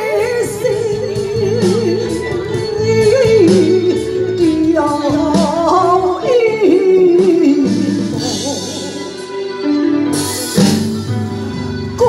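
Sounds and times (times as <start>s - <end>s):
opera singing into microphone: 0.0s - 10.2s
instrumental accompaniment: 0.0s - 12.0s.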